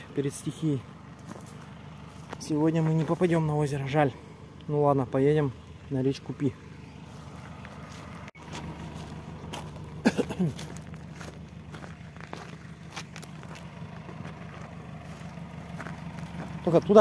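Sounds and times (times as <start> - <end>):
pickup engine idling: 0.0 - 17.0
footsteps on gravel and twigs: 0.5 - 4.1, 6.4 - 17.0.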